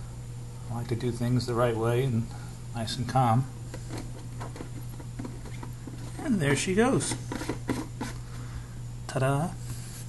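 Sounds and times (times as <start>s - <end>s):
steady low hum: 0.0s - 10.0s
plastic lid clicks and scrapes: 7.0s - 8.2s.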